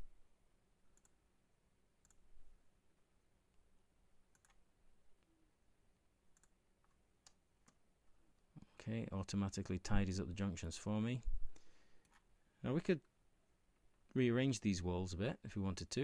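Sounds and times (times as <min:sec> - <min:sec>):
computer mouse clicks: 0:01.0 - 0:01.2, 0:02.0 - 0:02.2, 0:04.3 - 0:04.6, 0:06.4 - 0:07.8, 0:12.0 - 0:12.3.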